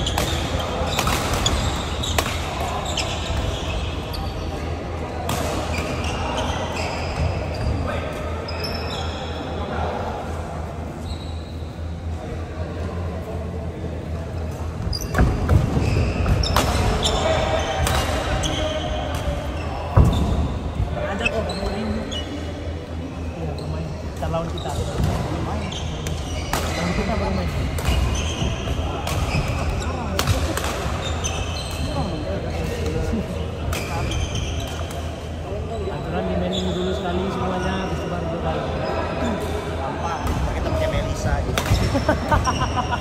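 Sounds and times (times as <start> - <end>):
voices talking: 0.0 - 43.0.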